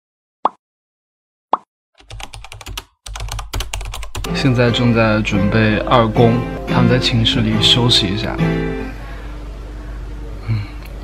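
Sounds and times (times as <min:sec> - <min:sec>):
rapid keyboard typing clicks: 0:02.0 - 0:04.4.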